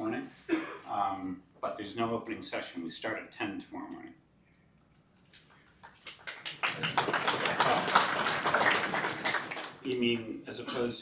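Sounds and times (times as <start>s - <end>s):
audience applause: 5.9s - 9.9s.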